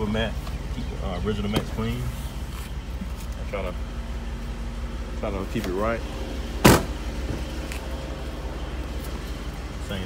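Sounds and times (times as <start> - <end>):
car door slamming: 6.6 - 7.5.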